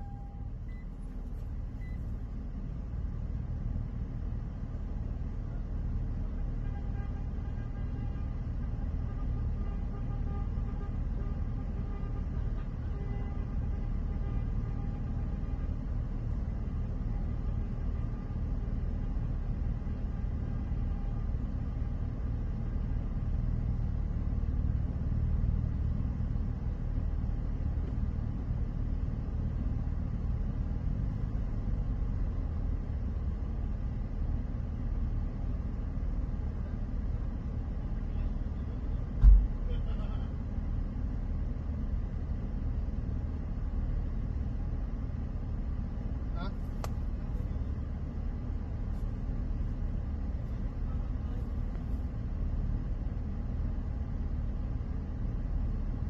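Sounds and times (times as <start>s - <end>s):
loud dull thump: 39.2s - 39.6s.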